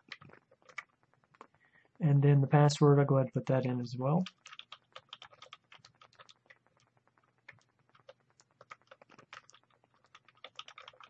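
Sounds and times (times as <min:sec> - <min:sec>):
faint keyboard typing: 0:00.0 - 0:11.0.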